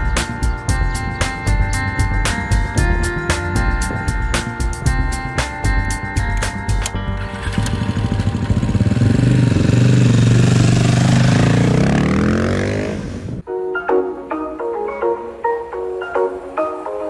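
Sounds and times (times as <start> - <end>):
motorcycle engine revving: 7.1 - 13.4.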